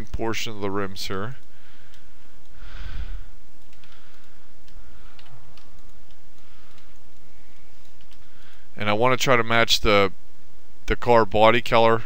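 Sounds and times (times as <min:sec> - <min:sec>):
soft breath: 0:01.5 - 0:08.7.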